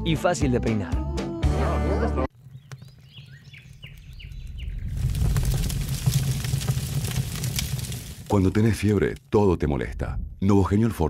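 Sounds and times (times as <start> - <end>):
birds chirping: 2.3 - 5.1
low rumbling with crackles: 2.3 - 11.0.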